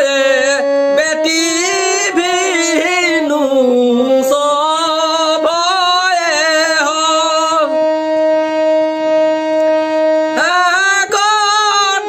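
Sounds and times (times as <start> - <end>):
person singing: 0.0 - 8.0, 10.2 - 12.0
harmonium steady reed note: 0.0 - 12.0.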